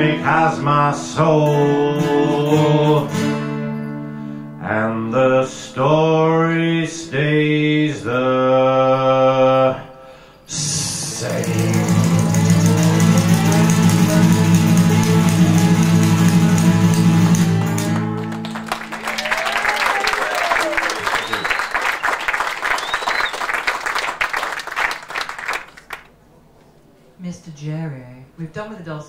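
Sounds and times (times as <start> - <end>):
strummed acoustic guitar: 0.0 - 4.6, 11.1 - 18.6
audience applause: 11.0 - 26.1
audience cheers: 18.2 - 25.7.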